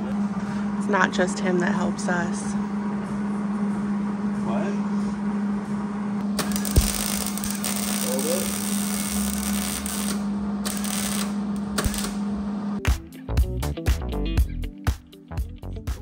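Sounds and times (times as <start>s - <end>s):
steady hum: 0.0s - 12.8s
welder arc crackling: 6.2s - 12.2s
music with a beat: 12.8s - 16.0s.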